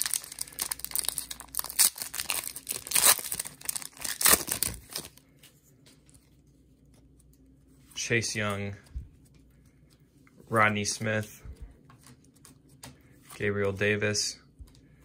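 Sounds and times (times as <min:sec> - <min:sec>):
foil wrapper tearing and crinkling: 0:00.0 - 0:05.2.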